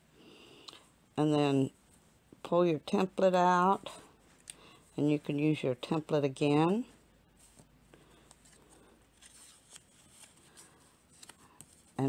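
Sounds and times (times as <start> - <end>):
paper being folded: 7.4 - 12.0.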